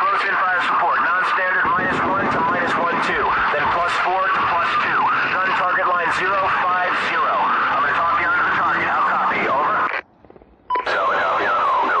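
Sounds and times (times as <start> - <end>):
voice over radio: 0.0 - 10.0, 10.8 - 12.0.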